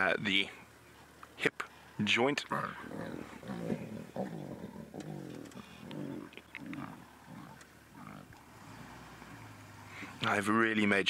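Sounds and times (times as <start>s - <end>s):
lion cubs growling: 2.5s - 10.2s.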